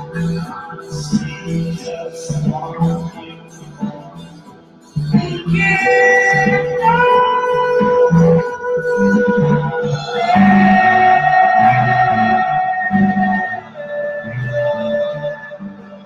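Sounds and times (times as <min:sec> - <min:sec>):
electric guitar: 0:00.0 - 0:16.0
bass line: 0:05.0 - 0:16.0.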